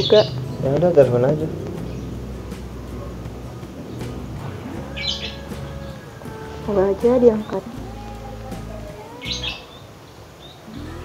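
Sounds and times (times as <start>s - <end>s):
bird chirp: 0.0s - 11.0s.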